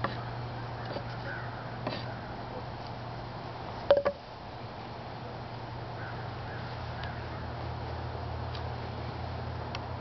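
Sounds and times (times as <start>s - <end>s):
bamboo tube knocking on wood: 3.9s - 4.2s.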